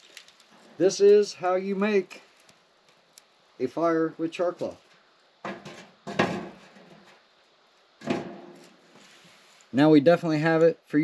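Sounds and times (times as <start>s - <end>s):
metal lid clanking on fire pit: 5.4s - 7.2s, 8.0s - 8.7s.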